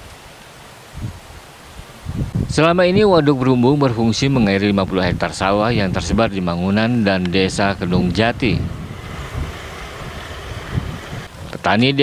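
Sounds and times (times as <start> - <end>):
faint steady hiss: 0.0 - 12.0
wind rumble on microphone: 0.8 - 12.0.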